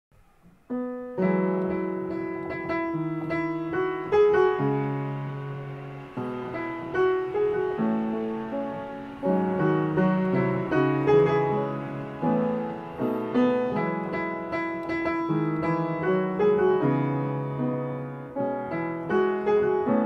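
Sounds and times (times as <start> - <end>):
piano chords: 0.2 - 20.0.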